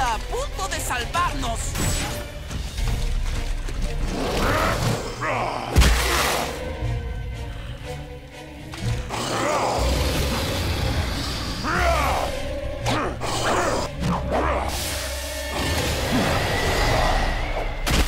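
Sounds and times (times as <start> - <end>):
action music: 0.0 - 18.0.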